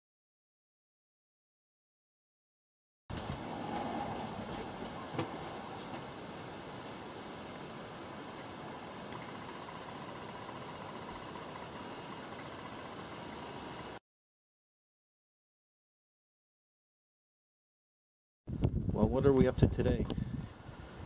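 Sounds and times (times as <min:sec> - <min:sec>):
vehicle running noise: 0:03.1 - 0:06.1.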